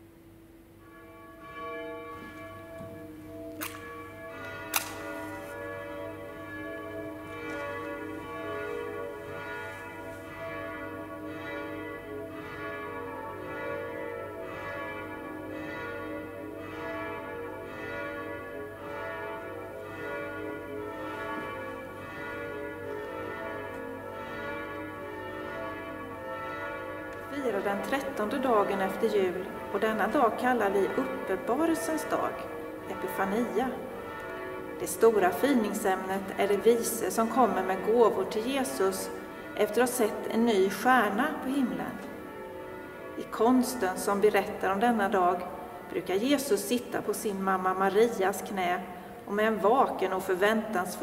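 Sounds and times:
church bells pealing: 0:00.5 - 0:51.0
sharp clicks: 0:04.7 - 0:05.0.

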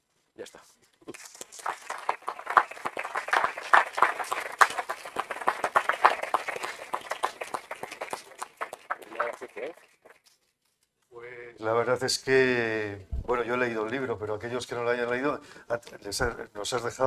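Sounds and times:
audience applause: 0:01.1 - 0:10.0.

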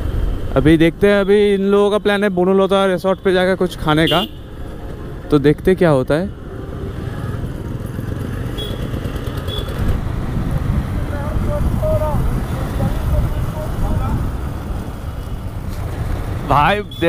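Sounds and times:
wind and road noise: 0:00.0 - 0:17.0
motorcycle engine: 0:06.2 - 0:16.8.

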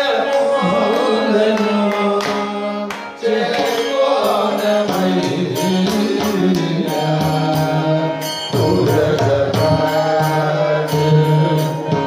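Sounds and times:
group of men singing devotional song: 0:00.0 - 0:12.0
hand drum strikes: 0:03.5 - 0:10.4.

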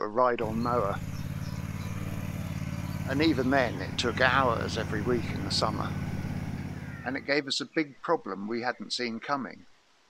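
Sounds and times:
ride-on mower engine running: 0:00.4 - 0:07.3.

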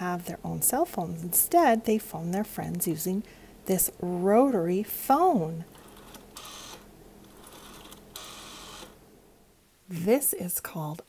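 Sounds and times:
rotary telephone dial whirring: 0:05.7 - 0:09.0.

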